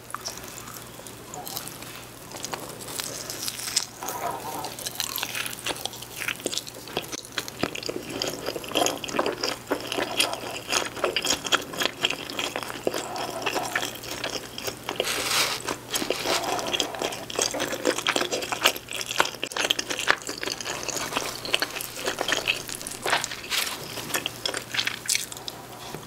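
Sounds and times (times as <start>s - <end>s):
close chewing with mouth clicks: 0.0s - 26.0s.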